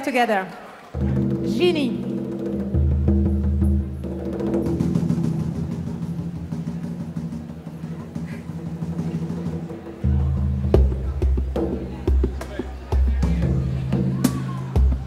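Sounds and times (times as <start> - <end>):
hand drums rolling strokes: 0.9 - 15.0.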